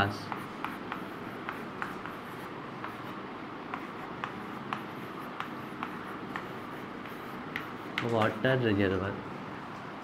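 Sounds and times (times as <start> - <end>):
chalk tapping and scratching on blackboard: 0.0 - 8.4
steady background hiss: 0.0 - 10.0.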